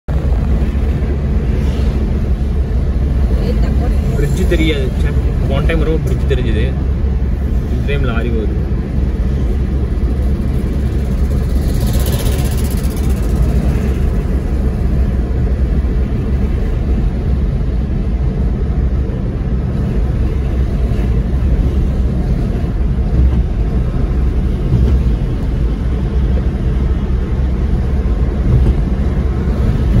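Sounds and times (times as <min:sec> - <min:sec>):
engine and tyre rumble: 0:00.0 - 0:30.0.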